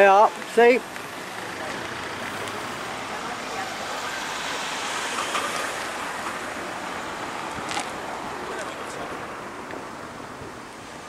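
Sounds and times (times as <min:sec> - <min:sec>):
road traffic hiss: 0:00.0 - 0:11.0.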